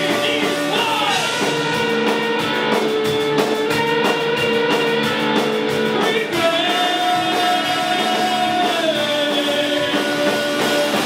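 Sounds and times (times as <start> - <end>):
drum kit steady beat: 0.0 - 11.0
electric guitars sustained notes: 0.0 - 11.0.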